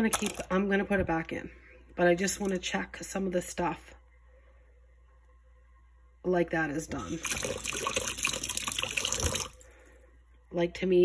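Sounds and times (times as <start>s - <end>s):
tap water splashing in sink: 7.0s - 9.6s.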